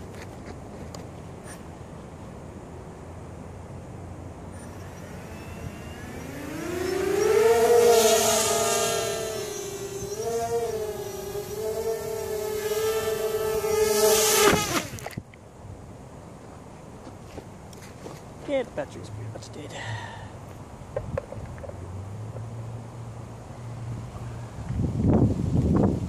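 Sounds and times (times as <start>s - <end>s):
quadcopter motors whining: 4.4s - 15.2s.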